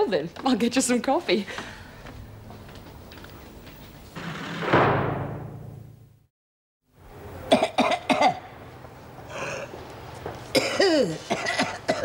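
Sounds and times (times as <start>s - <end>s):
woman coughing: 7.5s - 8.4s, 10.6s - 12.0s.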